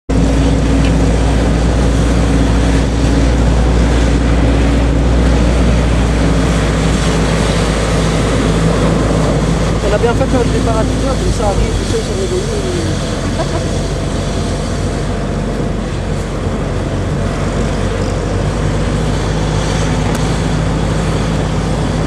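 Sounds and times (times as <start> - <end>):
vehicle engine drone: 0.1 - 22.0
wind on microphone: 0.1 - 22.0.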